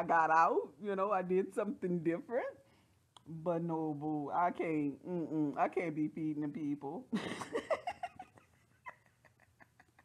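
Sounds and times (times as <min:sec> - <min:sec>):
woman laughing quietly: 0:07.1 - 0:10.0.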